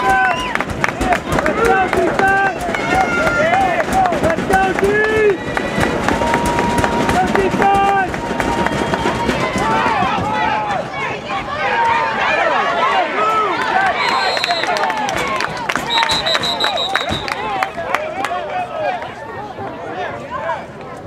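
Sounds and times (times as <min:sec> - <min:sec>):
people shouting and calling: 0:00.0 - 0:20.8.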